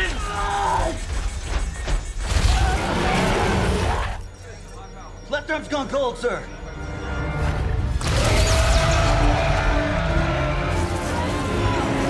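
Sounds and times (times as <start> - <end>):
people yelling: 0.0 - 1.1, 8.0 - 12.0.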